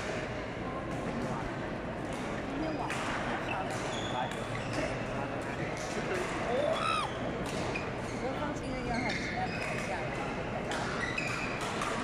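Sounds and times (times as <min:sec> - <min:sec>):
chatter of many people: 0:00.0 - 0:12.0
shoes squeaking on court floor: 0:03.5 - 0:05.1, 0:06.5 - 0:12.0
rackets hitting shuttlecocks: 0:07.3 - 0:08.1, 0:09.6 - 0:12.0.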